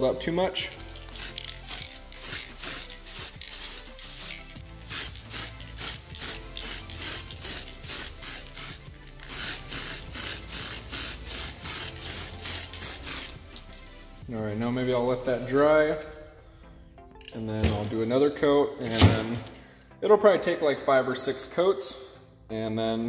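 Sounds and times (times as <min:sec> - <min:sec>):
spray can hissing bursts: 0:00.8 - 0:13.8.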